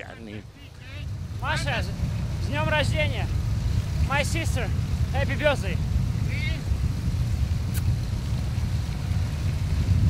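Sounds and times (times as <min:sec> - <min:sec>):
vehicle noise: 0:00.0 - 0:10.0
wind rumble on microphone: 0:00.9 - 0:10.0.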